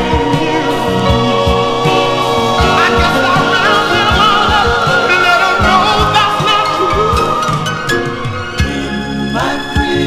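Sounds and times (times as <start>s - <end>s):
soul gospel band with high vocal: 0.0s - 10.0s.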